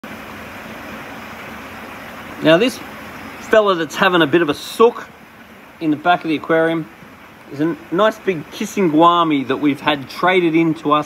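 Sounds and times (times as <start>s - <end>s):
even hiss: 0.0s - 11.0s.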